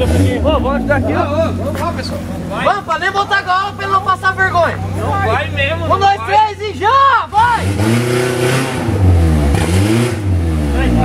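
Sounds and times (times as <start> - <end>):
buggy engine revving: 0.0 - 11.0.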